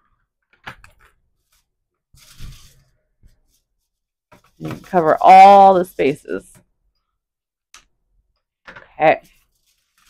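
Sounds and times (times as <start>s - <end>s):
aluminium foil crinkling: 1.4s - 2.9s, 9.3s - 10.0s.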